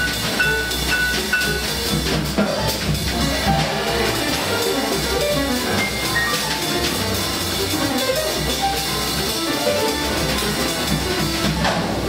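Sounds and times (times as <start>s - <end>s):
free jazz band playing: 0.0s - 12.0s.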